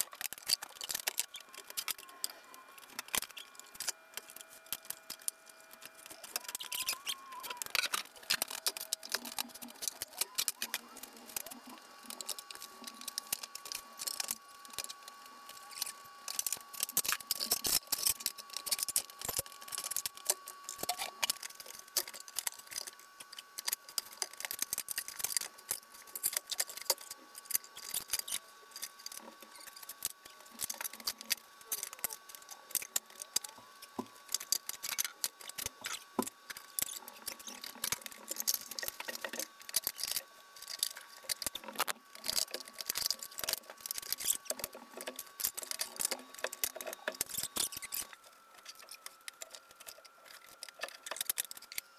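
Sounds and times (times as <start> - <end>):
faint high hum: 0.0 - 51.9.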